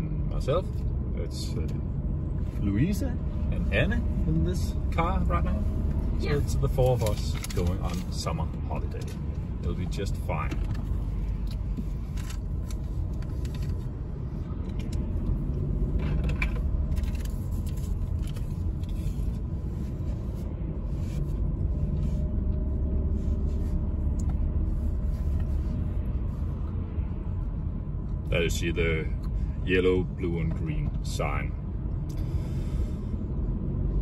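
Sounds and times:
car engine and tyres rumbling: 0.0s - 34.0s.

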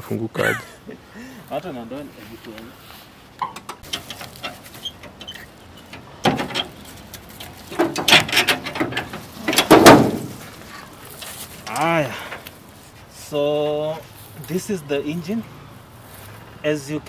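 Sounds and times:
car bonnet latch clicks and clunks: 3.4s - 6.8s, 7.4s - 10.4s.

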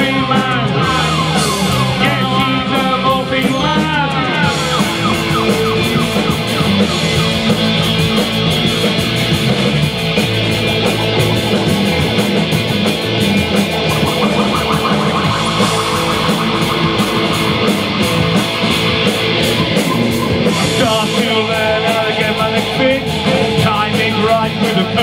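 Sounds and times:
drum kit with cymbals: 0.0s - 25.0s
electric guitars: 0.0s - 25.0s
wavering high melody: 0.8s - 2.9s, 4.2s - 9.1s, 10.2s - 23.1s.

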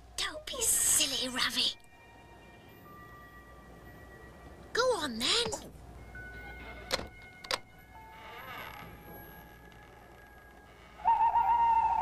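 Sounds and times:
eerie background music: 5.9s - 12.0s
owl hooting: 10.9s - 12.0s.

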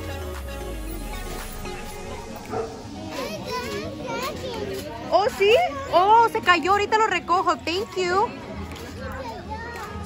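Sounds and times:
background music: 0.0s - 10.0s
children calling out and chattering: 0.8s - 10.0s.

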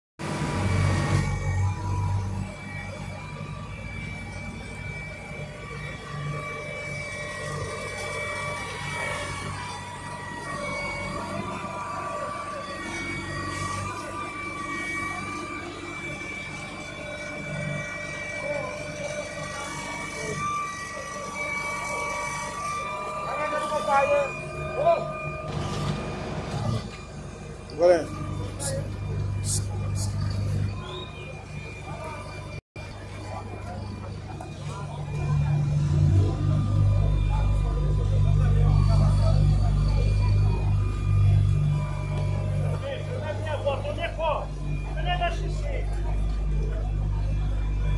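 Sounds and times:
diesel engine hum: 0.2s - 47.9s
high whining tones: 0.2s - 47.9s.

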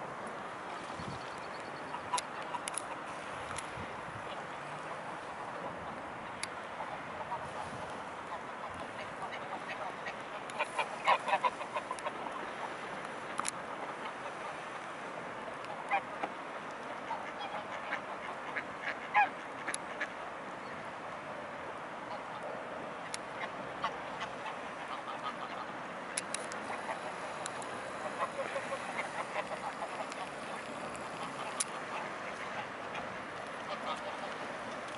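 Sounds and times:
background hiss: 0.0s - 34.9s
geese honking: 6.8s - 12.3s, 17.1s - 20.1s, 23.4s - 25.7s, 26.4s - 34.9s
ducks quacking: 6.8s - 12.4s, 23.4s - 25.7s, 26.6s - 34.5s.

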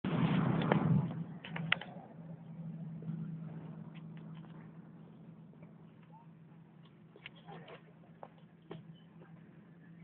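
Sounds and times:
car engine idling: 0.7s - 10.0s.

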